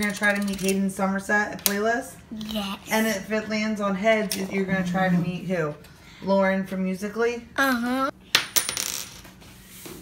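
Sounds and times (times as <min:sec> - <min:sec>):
coin clattering on floor: 0:08.4 - 0:09.3.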